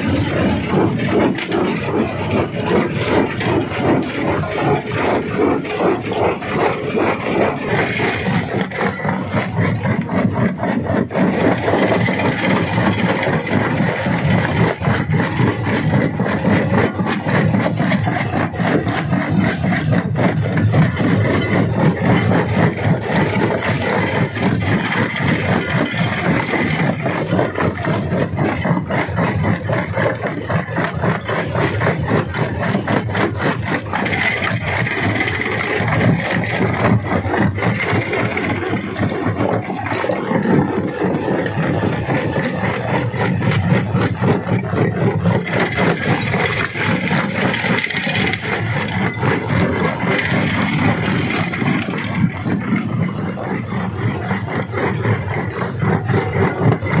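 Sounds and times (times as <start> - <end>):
rock crusher running: 0.0 - 57.0
stone clattering and grinding: 0.0 - 57.0.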